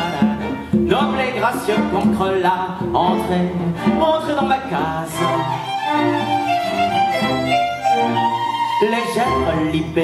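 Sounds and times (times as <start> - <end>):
man singing: 0.0 - 5.7, 8.7 - 10.0
string orchestra playing: 0.0 - 10.0.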